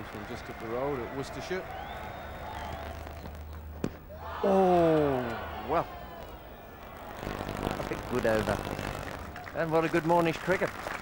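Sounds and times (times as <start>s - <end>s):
low hum: 2.4s - 9.5s.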